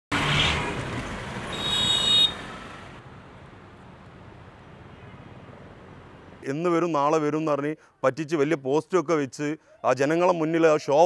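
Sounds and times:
street traffic: 0:00.1 - 0:10.0
high-pitched vehicle horn beep: 0:01.5 - 0:02.4.

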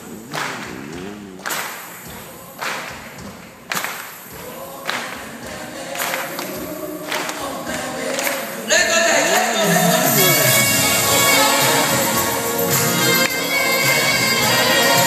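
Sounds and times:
steady beat: 0:00.0 - 0:08.0
sharp clap-like hits: 0:00.0 - 0:08.6
people singing: 0:00.0 - 0:15.0.

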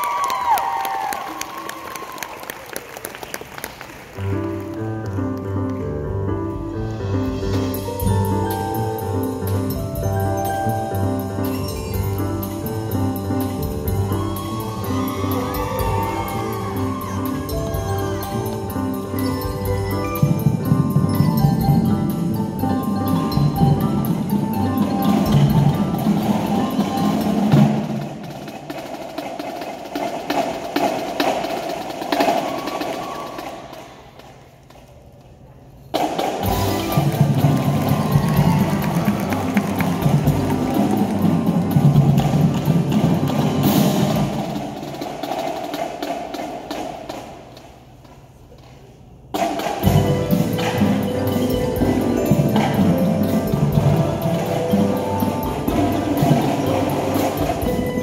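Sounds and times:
percussion ensemble rapid drumming: 0:07.0 - 0:34.6, 0:35.9 - 0:48.4, 0:49.1 - 0:58.0.

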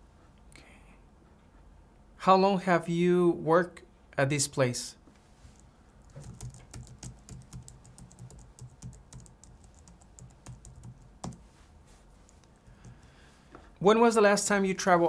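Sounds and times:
typing on keyboard: 0:06.0 - 0:11.5.

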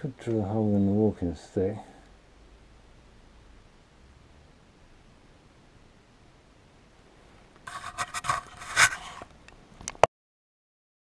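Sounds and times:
camera handling scraping and rubbing: 0:07.7 - 0:09.3.

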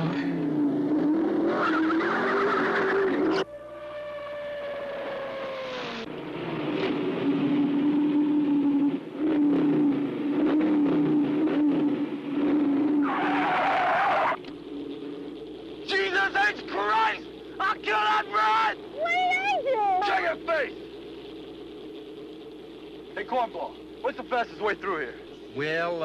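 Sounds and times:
race car engine: 0:00.0 - 0:26.0
engine note falling in pitch: 0:03.1 - 0:13.0
tyres squealing: 0:13.0 - 0:14.4.

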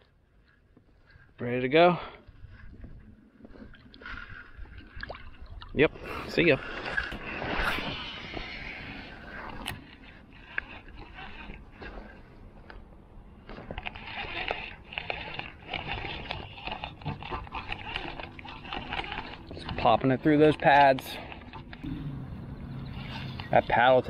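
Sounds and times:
fishing line whirring out: 0:06.1 - 0:12.2, 0:13.5 - 0:19.7, 0:21.2 - 0:24.0.

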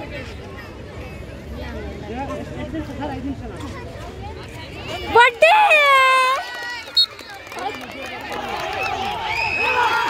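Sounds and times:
players and spectators shouting: 0:08.4 - 0:10.0.

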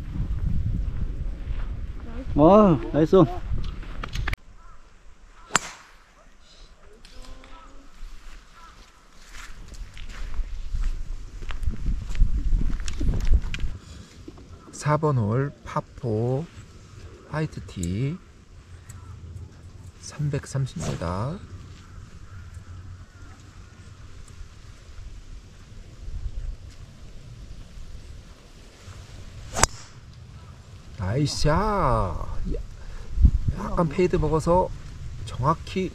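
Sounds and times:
golf club striking ball: 0:05.4 - 0:05.9, 0:29.5 - 0:30.0
swish of golf swing: 0:29.4 - 0:30.0.

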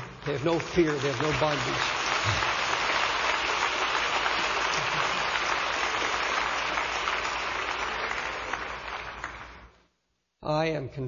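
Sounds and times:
congregation applauding: 0:00.0 - 0:09.8.

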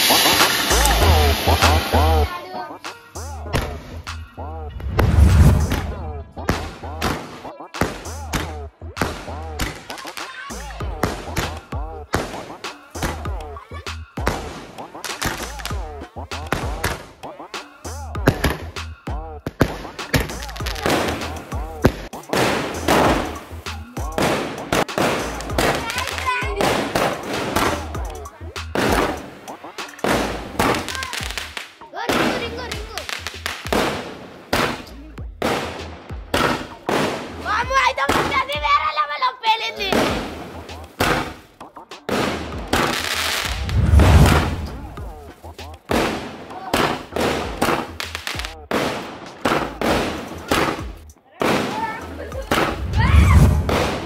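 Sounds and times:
fireworks bursting with echoes: 0:00.0 - 0:13.4, 0:14.2 - 0:18.6, 0:19.4 - 0:28.0, 0:28.7 - 0:38.6, 0:39.9 - 0:54.0
background music: 0:00.0 - 0:54.0
firework shells bursting: 0:19.6 - 0:23.6, 0:24.2 - 0:27.8, 0:39.9 - 0:54.0.

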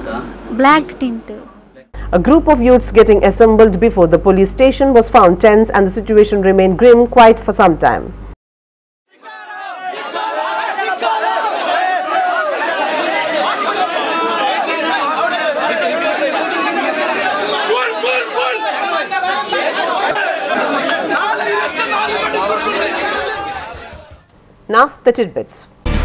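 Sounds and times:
crowd of men talking: 0:09.1 - 0:24.3.

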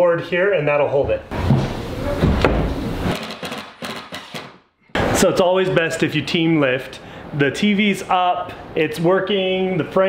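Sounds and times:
wood knocking and scraping: 0:01.3 - 0:04.5.

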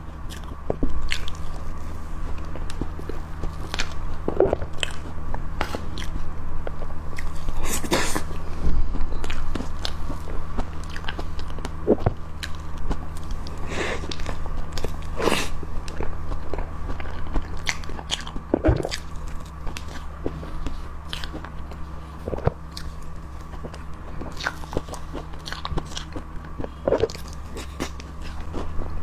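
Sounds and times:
steady low hum: 0:00.0 - 0:29.0
small crunches of crumbs: 0:00.2 - 0:29.0
wet chewing and lip smacking: 0:00.3 - 0:01.7, 0:02.3 - 0:29.0.

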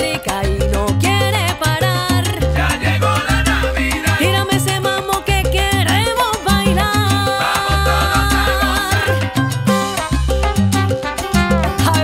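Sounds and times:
salsa band playing: 0:00.0 - 0:12.0.

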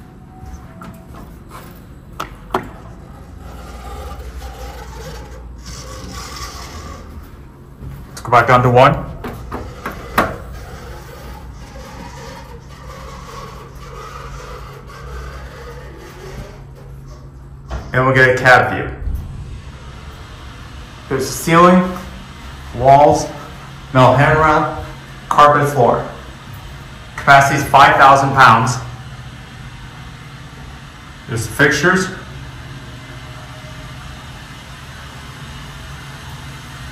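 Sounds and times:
elevator cab humming: 0:00.0 - 0:36.9
faint rubbing noise: 0:02.8 - 0:07.4, 0:09.4 - 0:17.3.

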